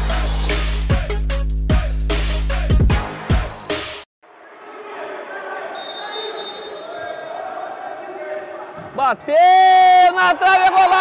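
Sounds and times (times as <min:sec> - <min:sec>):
echoing voices in gymnasium: 0:04.3 - 0:11.0.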